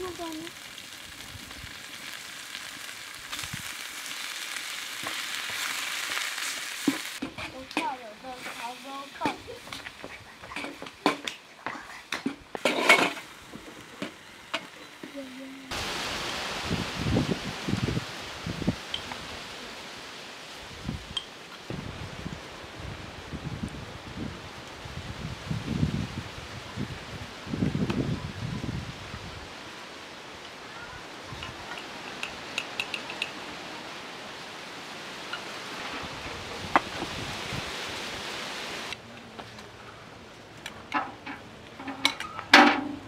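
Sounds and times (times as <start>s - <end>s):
meat sizzling in a metal pan: 0.0s - 11.3s.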